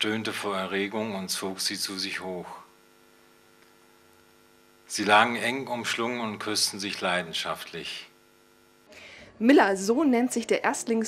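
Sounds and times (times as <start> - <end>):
man reading aloud: 0.0 - 2.7, 4.9 - 8.1
faint electrical hum: 0.0 - 11.0.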